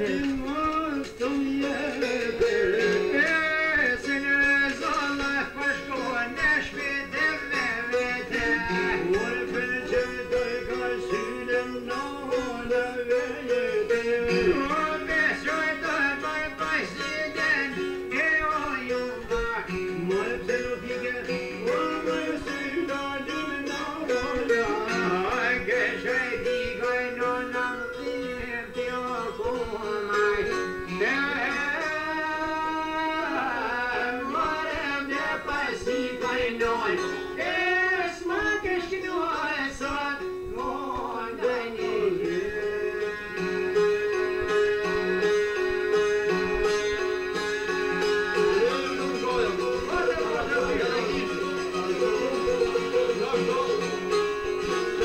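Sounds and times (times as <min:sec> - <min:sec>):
man singing ornamented melody: 0:00.0 - 0:55.0
plucked lutes playing folk tune: 0:00.0 - 0:55.0.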